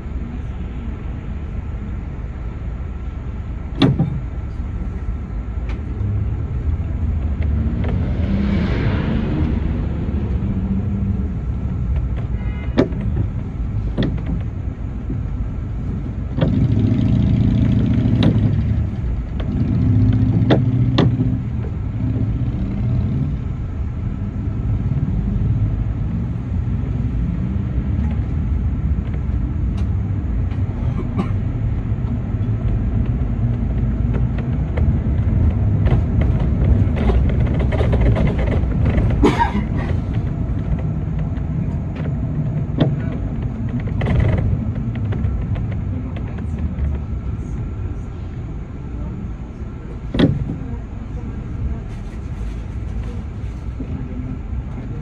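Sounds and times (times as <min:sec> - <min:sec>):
bus engine and road rumble: 0:00.0 - 0:55.0
sharp rattling knocks: 0:32.7 - 0:47.0.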